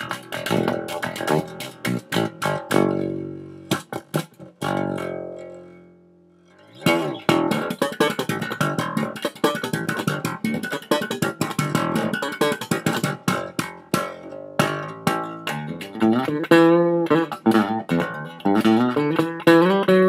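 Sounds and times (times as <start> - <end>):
slap bass guitar: 0.0 - 20.0.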